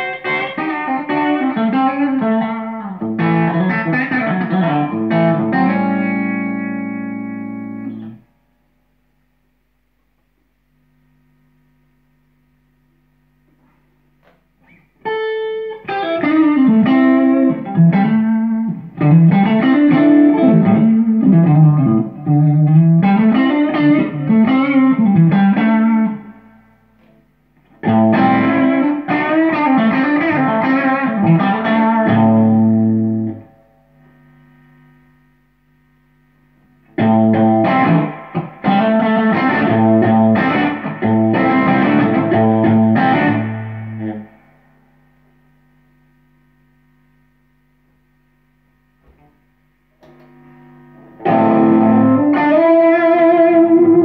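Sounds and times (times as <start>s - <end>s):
electric guitar chords: 0.0s - 9.4s, 10.7s - 54.0s.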